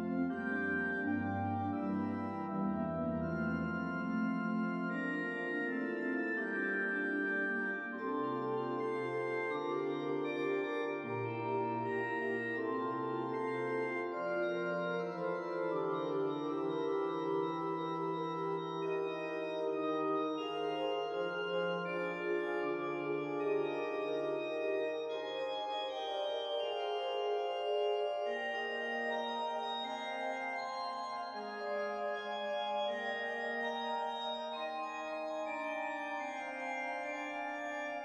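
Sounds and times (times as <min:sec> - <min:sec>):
organ playing sustained chords: 0:00.0 - 0:38.0.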